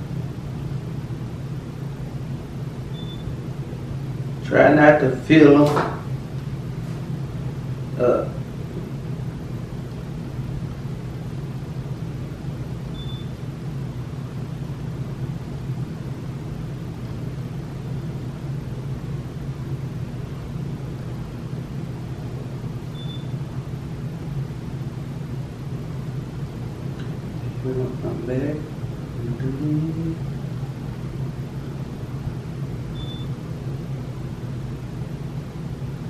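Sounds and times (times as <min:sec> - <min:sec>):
low hum with hiss: 0:00.0 - 0:36.0.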